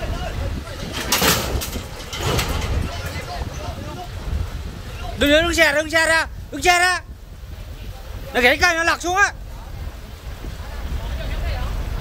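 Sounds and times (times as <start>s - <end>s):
low steady rumble: 0.0s - 12.0s
steel cage scraping and rattling: 0.6s - 3.8s.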